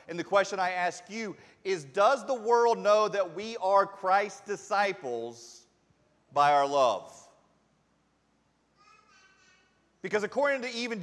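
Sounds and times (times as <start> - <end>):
faint high-pitched voice: 8.8 - 9.9.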